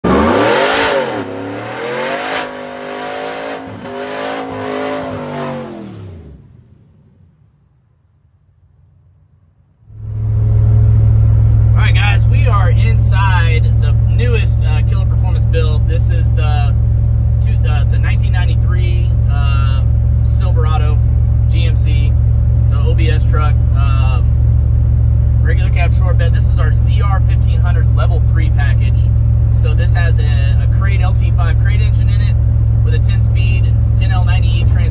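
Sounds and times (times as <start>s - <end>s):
engine revving: 0.0s - 7.3s
truck cruising drone: 0.0s - 34.9s
man talking: 11.8s - 16.8s, 17.4s - 24.3s, 25.4s - 34.9s.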